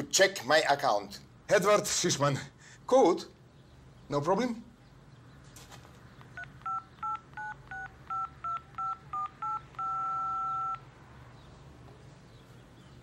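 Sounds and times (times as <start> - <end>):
phone keypad beeps: 6.4 - 10.8.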